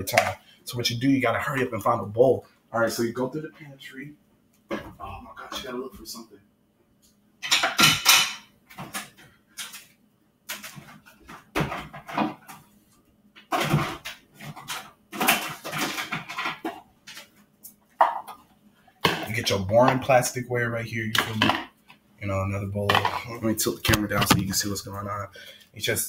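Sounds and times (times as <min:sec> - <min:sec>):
dishes and containers clattering: 0:07.4 - 0:09.9, 0:10.5 - 0:12.6, 0:13.4 - 0:17.4, 0:18.0 - 0:20.0, 0:22.9 - 0:24.6.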